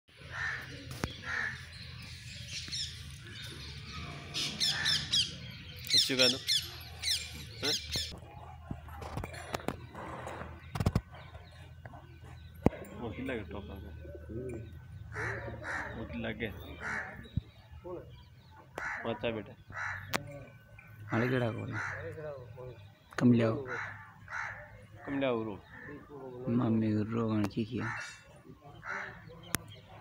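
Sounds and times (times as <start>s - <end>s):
harsh bird calls: 0.1s - 8.2s, 13.5s - 30.0s.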